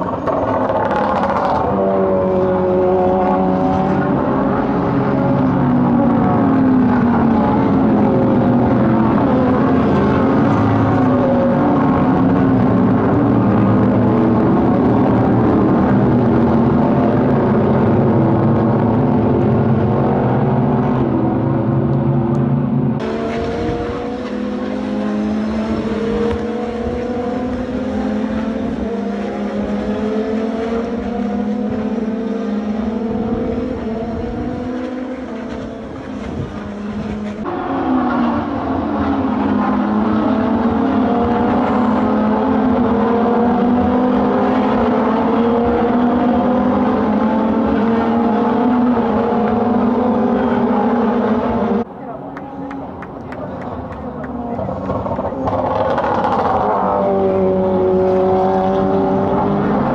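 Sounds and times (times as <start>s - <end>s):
race car engines accelerating: 0.0s - 59.9s.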